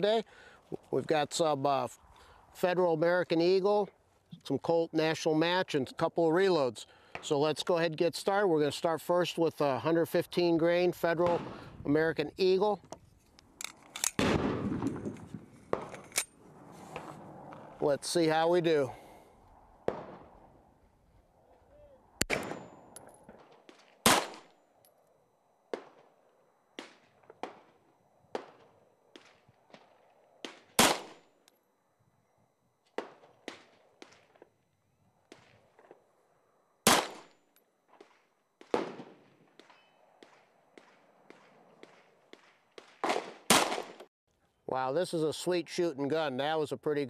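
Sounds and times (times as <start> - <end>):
pistol shots with echo: 11.2 - 11.7, 14.2 - 15.1, 22.2 - 24.5, 30.4 - 31.3, 36.8 - 37.3, 38.6 - 44.0
sharp gunshot cracks: 11.2 - 11.7, 14.0 - 16.0, 19.8 - 20.4, 22.2 - 24.6, 26.8 - 31.3, 36.8 - 37.4, 38.0 - 44.1
ringing gunshot report: 14.2 - 15.1.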